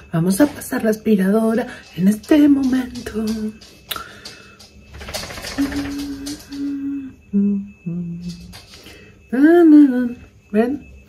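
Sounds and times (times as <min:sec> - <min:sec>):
woman humming: 0:05.6 - 0:08.5.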